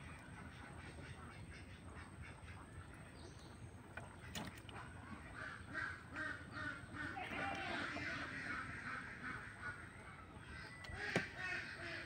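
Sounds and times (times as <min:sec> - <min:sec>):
birds calling: 0:00.0 - 0:12.0.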